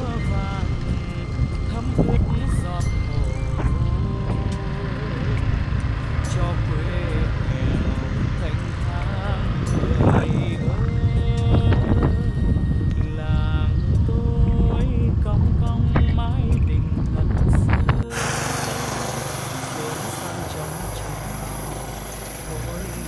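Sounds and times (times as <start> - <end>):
background music with singing: 0.0 - 23.0
wind rumble on microphone: 0.0 - 23.0.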